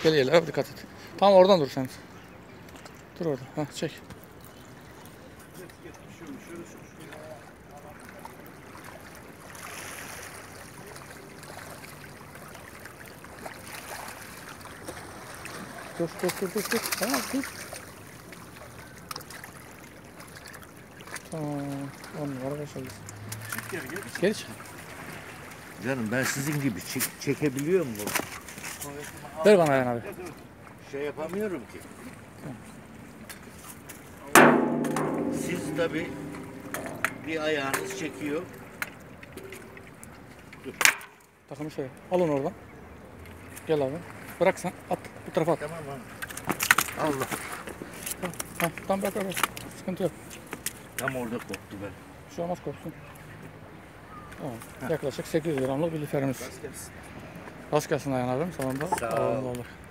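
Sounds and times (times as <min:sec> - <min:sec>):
fish splashing at water surface: 0:08.7 - 0:25.8.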